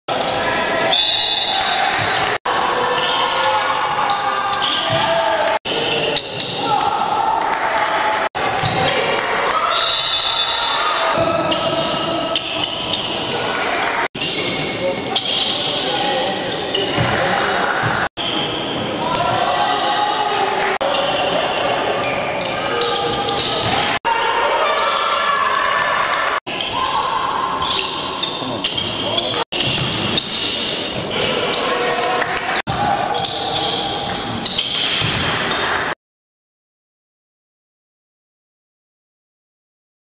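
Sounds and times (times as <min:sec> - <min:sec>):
voices of players: 0:00.1 - 0:35.5
sneakers squeaking on court: 0:01.3 - 0:06.8, 0:08.4 - 0:09.1, 0:11.2 - 0:19.5, 0:20.8 - 0:24.0, 0:27.6 - 0:35.7
basketball bouncing on court: 0:08.4 - 0:09.1, 0:16.9 - 0:17.2, 0:28.6 - 0:30.5.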